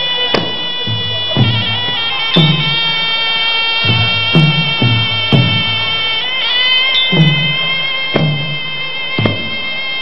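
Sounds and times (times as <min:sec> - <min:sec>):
reed oboe nasal melody: 0:00.0 - 0:10.0
drum beat: 0:00.3 - 0:10.0.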